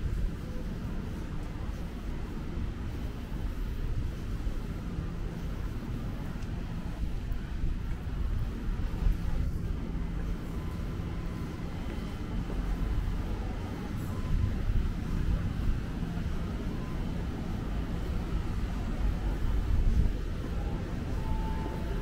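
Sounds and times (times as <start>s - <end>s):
faint steady hum: 0.0s - 22.0s
low uneven street rumble: 0.0s - 22.0s.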